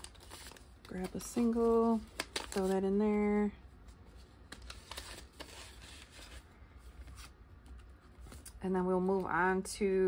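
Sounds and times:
paper bills and plastic rustling: 0.0 - 9.4.

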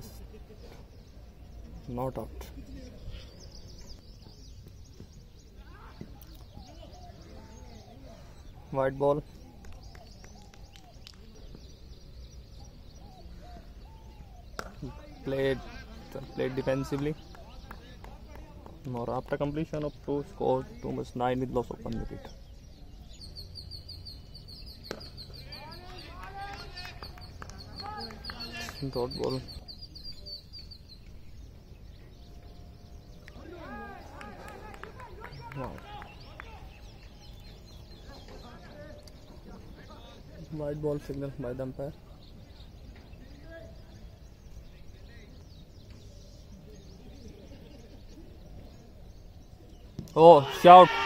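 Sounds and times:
bird chirping: 0.0 - 50.9
faint distant voices: 0.0 - 51.0.

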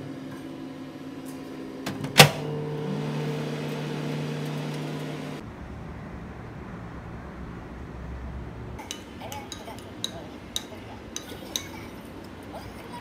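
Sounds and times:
microwave oven humming: 0.0 - 13.0.

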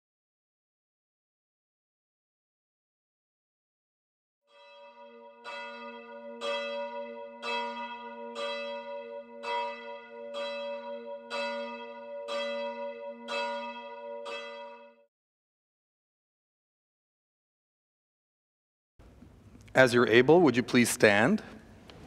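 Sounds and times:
church bell ringing: 4.5 - 15.1.

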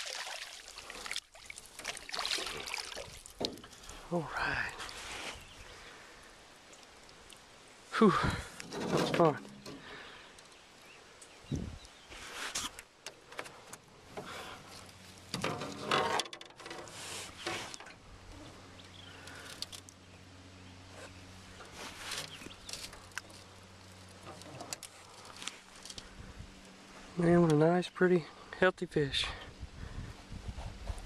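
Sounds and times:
light water sounds: 0.0 - 12.8
handling clicks and rustles: 21.6 - 27.6.

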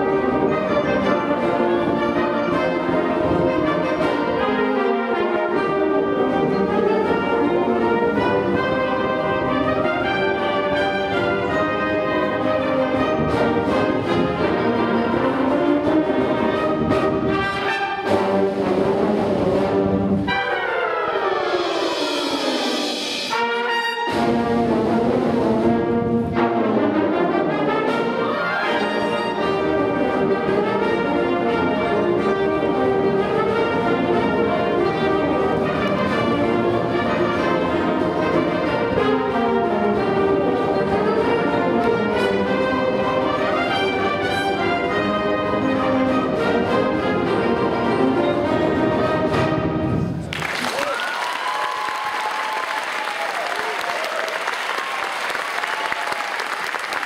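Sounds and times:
wind band playing: 0.0 - 50.8.

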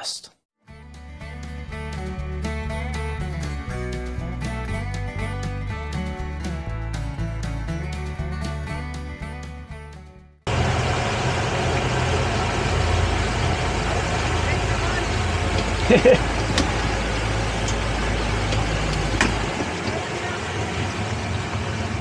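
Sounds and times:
outboard engine running: 10.5 - 22.0
water rushing: 10.5 - 22.0
wind: 10.5 - 22.0.

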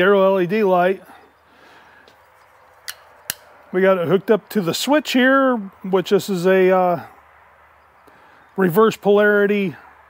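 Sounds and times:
low steady background hiss: 0.0 - 9.9
sharp click: 2.8 - 3.5.

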